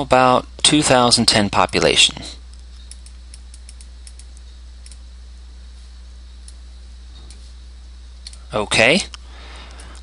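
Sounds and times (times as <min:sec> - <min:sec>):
low electrical hum: 0:00.0 - 0:10.0
computer mouse clicks: 0:02.5 - 0:05.0.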